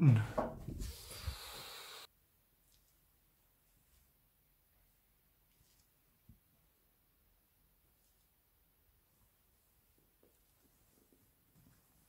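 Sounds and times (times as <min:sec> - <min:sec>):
man speaking: 0:00.0 - 0:00.4
faint steady hiss: 0:00.0 - 0:12.0.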